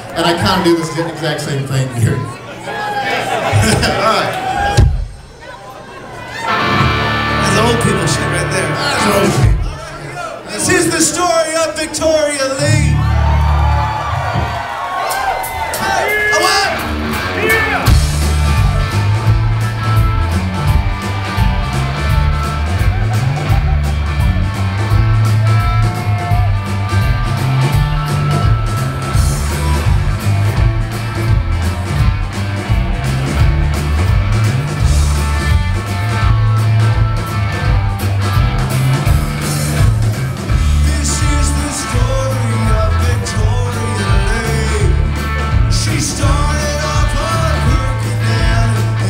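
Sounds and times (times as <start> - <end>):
live rock band: 6.2 - 49.0
pulsing bass line: 16.9 - 49.0.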